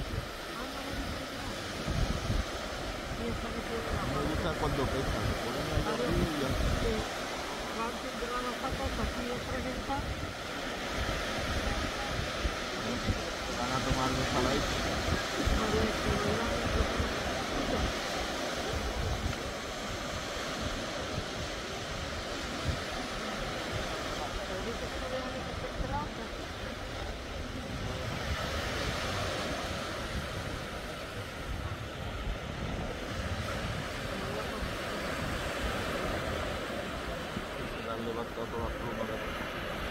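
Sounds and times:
faint voices: 0.0s - 39.9s
small waves breaking on sand: 0.0s - 39.9s
wind rumbling on microphone: 0.0s - 39.9s.

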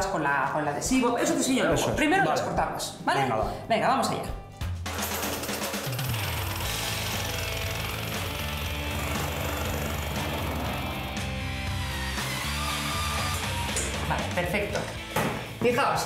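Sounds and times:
background music: 0.0s - 16.0s
jigsaw cutting panel: 5.9s - 11.3s.

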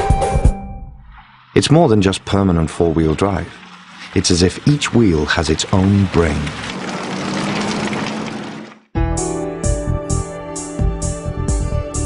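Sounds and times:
engine drone: 1.6s - 8.9s
tyres churning through mud: 1.7s - 8.8s.

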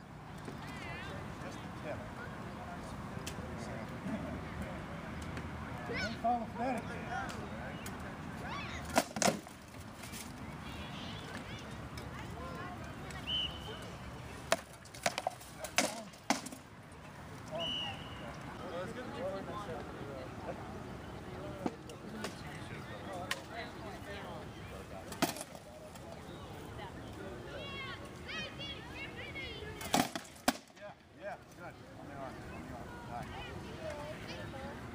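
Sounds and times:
faint distant voices: 0.0s - 34.9s.

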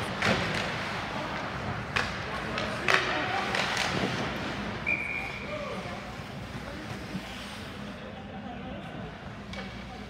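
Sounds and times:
ice rink background hum: 0.0s - 10.0s.

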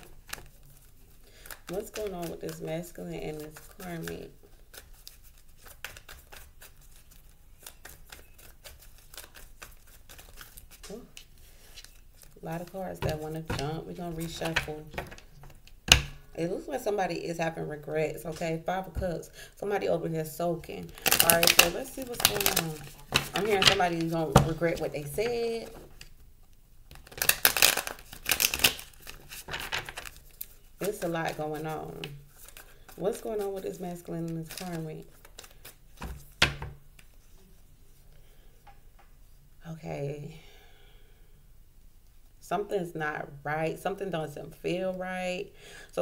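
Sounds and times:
cards being shuffled: 0.0s - 15.8s, 20.9s - 26.1s, 26.9s - 37.4s.

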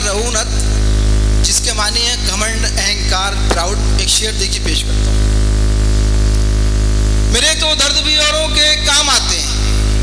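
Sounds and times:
electrical mains hum: 0.0s - 10.0s
sound system hiss: 0.0s - 10.0s.

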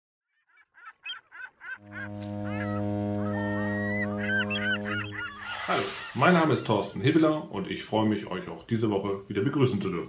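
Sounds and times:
honking bird calls: 0.6s - 7.1s
steady low drone: 1.8s - 6.7s.

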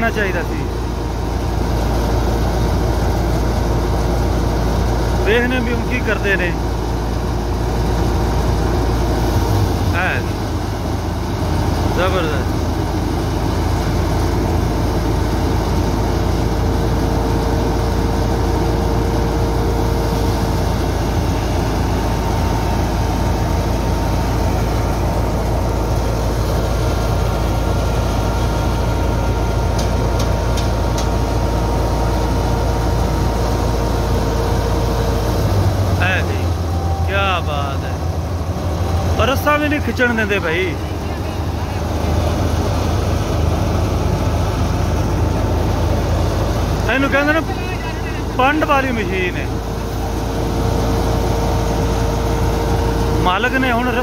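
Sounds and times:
thresher running: 0.0s - 54.0s
tractor diesel engine: 0.0s - 54.0s.

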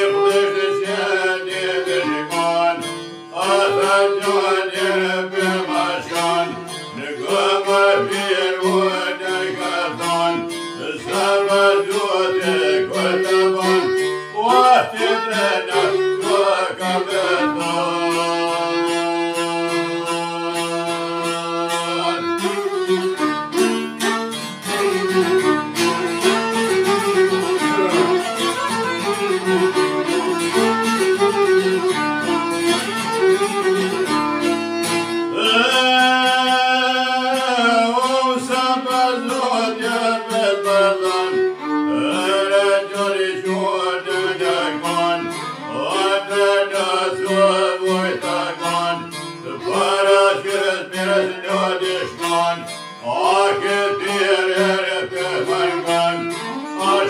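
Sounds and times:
man singing: 0.0s - 22.8s, 27.5s - 28.3s, 35.3s - 57.0s
bowed violin: 0.0s - 57.0s
plucked lute: 0.0s - 57.0s.

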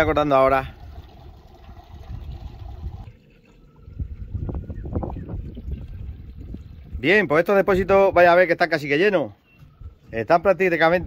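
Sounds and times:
water trickling and splashing: 0.0s - 8.0s
wind rumbling on microphone: 0.0s - 8.7s, 9.6s - 11.0s.

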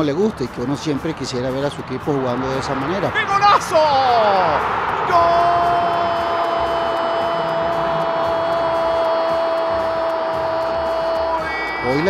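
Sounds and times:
stadium crowd noise: 0.0s - 12.0s
commentator shouting goal: 3.0s - 12.0s.

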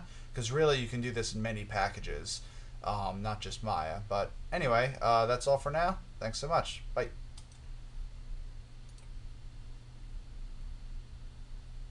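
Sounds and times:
low steady background hum: 0.0s - 11.9s
computer mouse clicks: 7.4s - 7.7s, 8.8s - 9.2s.

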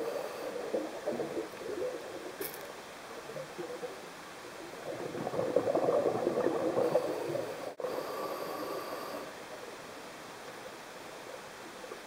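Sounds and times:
faint underwater hiss: 0.0s - 12.0s
diver's exhaled bubbles: 4.8s - 7.6s.

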